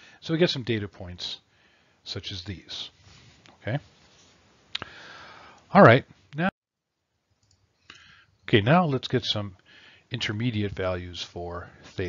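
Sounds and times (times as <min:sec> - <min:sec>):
person speaking: 0:05.7 - 0:06.5, 0:08.4 - 0:12.0.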